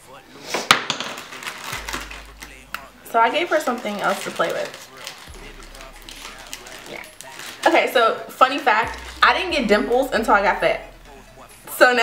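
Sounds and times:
small objects clattering: 0:00.5 - 0:07.9.

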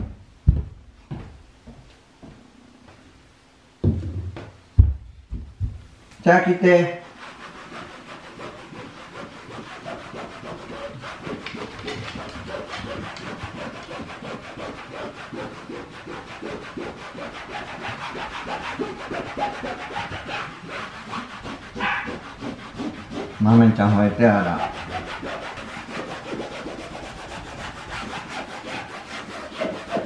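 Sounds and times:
cleaning pad scrubbing wall: 0:04.8 - 0:30.0.

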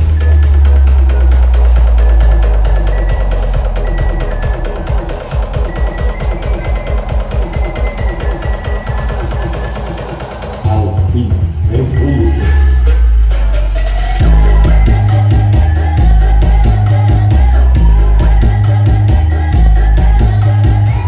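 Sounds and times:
loud electronic dance music: 0:00.0 - 0:21.0.

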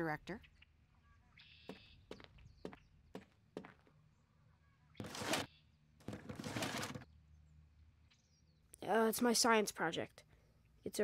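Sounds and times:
rough scraping or rustling: 0:05.0 - 0:05.5, 0:06.1 - 0:07.0.

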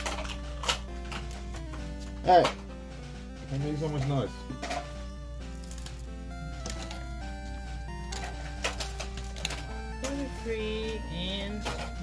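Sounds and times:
background music of held notes: 0:00.0 - 0:12.0.

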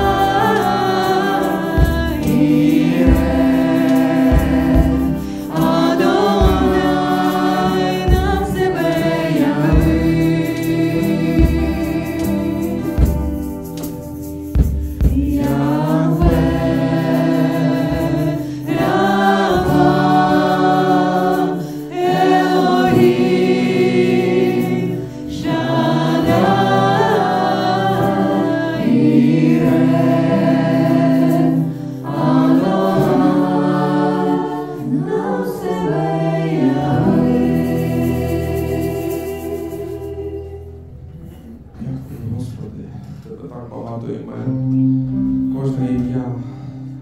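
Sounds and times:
group singing in harmony: 0:00.0 - 0:42.2
acoustic guitar: 0:00.0 - 0:47.0.

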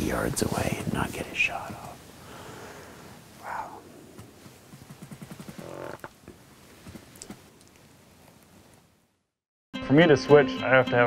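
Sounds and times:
man whispering: 0:00.0 - 0:02.0, 0:03.4 - 0:04.1.

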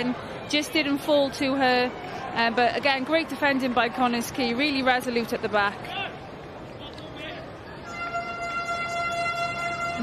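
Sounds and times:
stadium crowd murmur: 0:00.0 - 0:10.0
held musical tone: 0:07.9 - 0:10.0.

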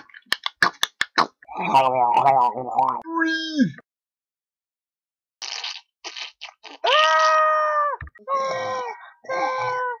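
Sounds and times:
young person screaming: 0:06.8 - 0:10.0.

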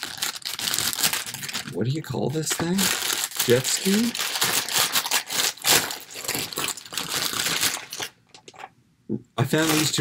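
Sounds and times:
plastic package crinkling: 0:00.0 - 0:08.7, 0:09.4 - 0:10.0.

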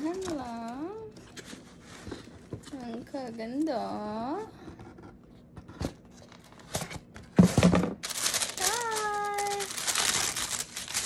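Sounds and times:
paper crinkling: 0:00.0 - 0:03.0, 0:08.0 - 0:11.0.

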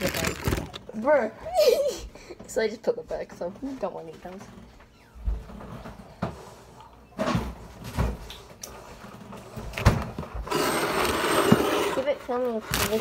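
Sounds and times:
plastic bag crinkling: 0:00.0 - 0:01.1, 0:12.3 - 0:13.0.

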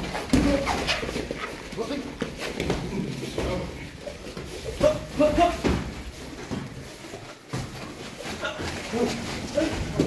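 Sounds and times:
people grunting: 0:02.4 - 0:05.9, 0:08.2 - 0:10.0.

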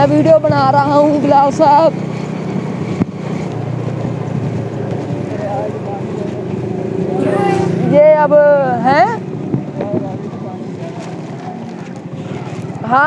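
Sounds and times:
motorcycle engine running: 0:00.0 - 0:13.0
road noise: 0:00.0 - 0:13.0.

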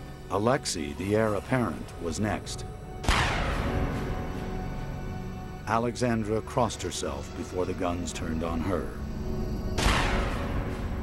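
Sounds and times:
dark tense music: 0:00.0 - 0:11.0.

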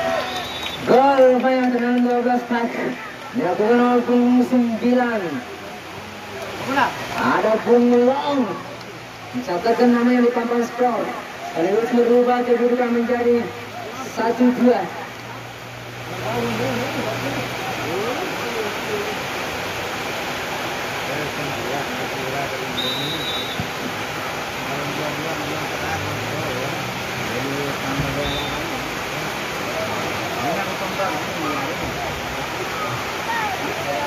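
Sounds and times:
faint shouting voices: 0:29.6 - 0:34.0.

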